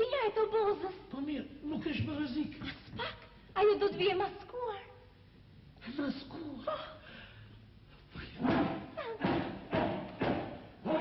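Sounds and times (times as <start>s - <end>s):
loud thumps: 8.4s - 10.8s.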